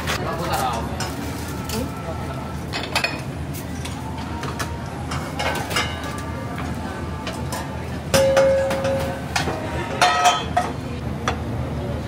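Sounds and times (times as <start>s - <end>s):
pans and utensils clinking: 2.7s - 11.4s.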